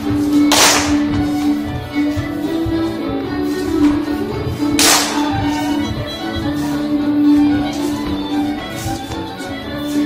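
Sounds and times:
dance band playing a reel: 0.0 - 10.0
sharp crack: 0.5 - 1.0, 4.8 - 5.3.

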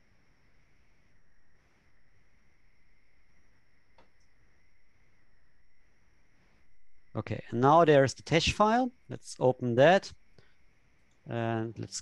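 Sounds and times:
thin steady whine: 0.0 - 12.0
faint click: 3.9 - 4.4.

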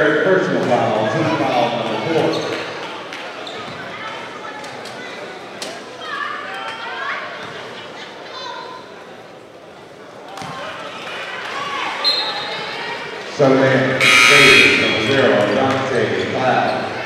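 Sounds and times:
crowd chatter echoing: 0.0 - 17.0.

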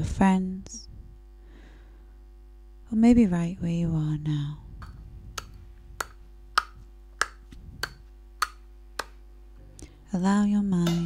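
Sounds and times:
faint steady hum: 0.0 - 11.0
regular clock ticking: 4.8 - 9.2.

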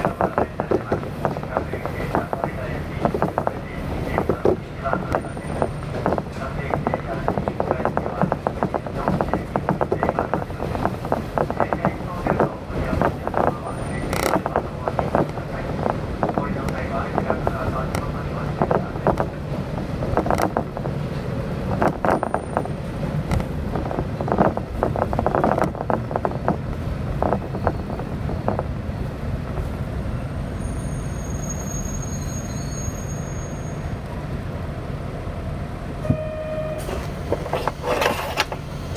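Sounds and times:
wheels clacking over rail joints: 0.0 - 28.7
railcar running rumble: 0.0 - 38.9
faint high squeal: 30.5 - 34.0
short beep: 36.0 - 37.1.

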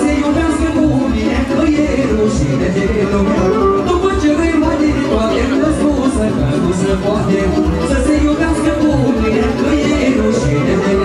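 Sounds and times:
fast folk dance band music: 0.0 - 11.0.

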